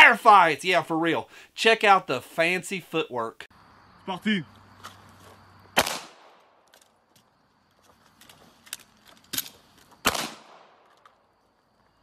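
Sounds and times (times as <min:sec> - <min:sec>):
pistol shots: 0:05.8 - 0:06.6, 0:10.0 - 0:10.9.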